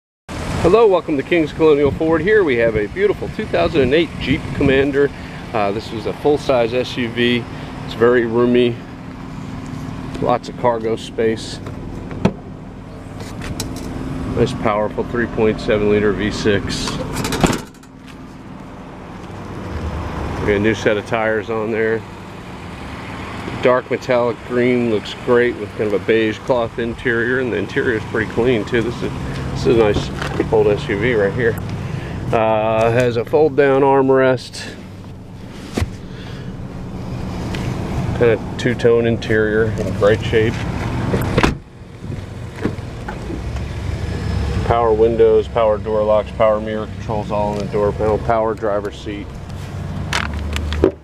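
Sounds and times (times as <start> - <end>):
liftgate swinging open: 16.9 - 18.0.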